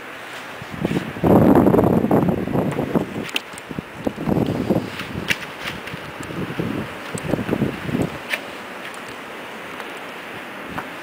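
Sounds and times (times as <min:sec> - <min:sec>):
wind buffeting microphone: 0:00.6 - 0:08.3.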